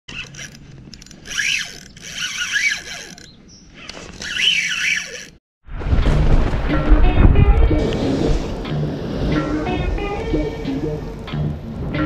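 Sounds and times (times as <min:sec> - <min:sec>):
fishing reel whirring and ratcheting: 0:00.1 - 0:03.4, 0:04.1 - 0:05.4.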